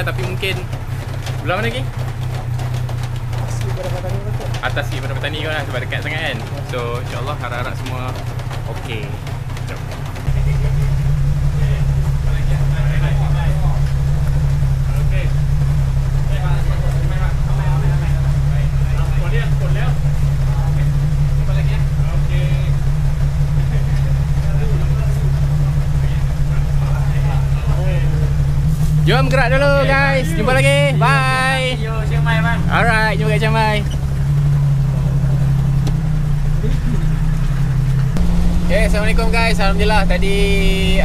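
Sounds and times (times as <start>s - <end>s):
low mechanical hum: 0.0s - 41.0s
faint voices: 3.0s - 35.7s.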